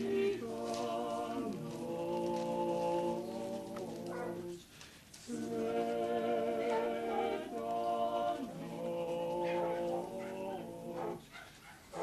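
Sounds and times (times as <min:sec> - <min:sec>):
group singing unaccompanied: 0:00.0 - 0:11.4.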